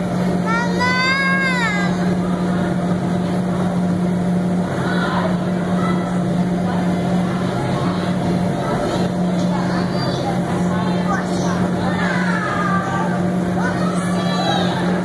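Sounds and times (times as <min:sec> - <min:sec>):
electric air blowers humming: 0:00.0 - 0:15.0
faint children's voices: 0:04.7 - 0:15.0.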